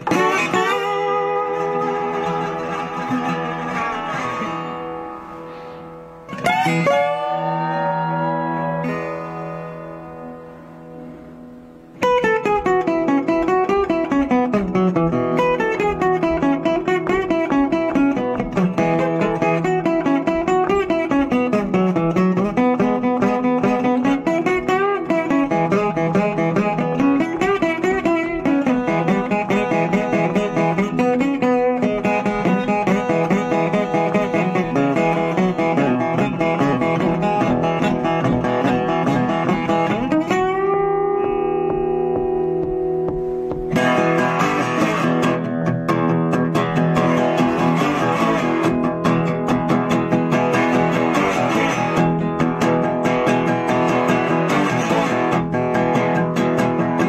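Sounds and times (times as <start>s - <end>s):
fingerpicked guitar with bass line: 0.0s - 57.0s
resonator guitar chords ringing: 0.0s - 57.0s.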